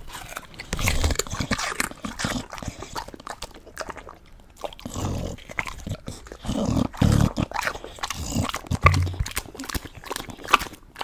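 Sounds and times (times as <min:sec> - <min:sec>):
dog chewing and licking: 0:00.0 - 0:11.0.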